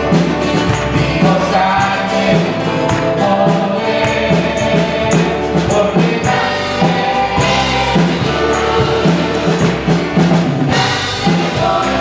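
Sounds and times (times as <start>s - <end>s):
drums: 0.0s - 12.0s
low bass line: 0.0s - 12.0s
praise band playing: 0.0s - 12.0s.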